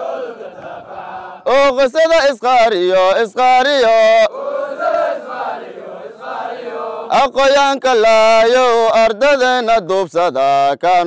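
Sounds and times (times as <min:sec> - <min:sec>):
men chanting in unison: 0:00.0 - 0:01.7, 0:02.7 - 0:08.5.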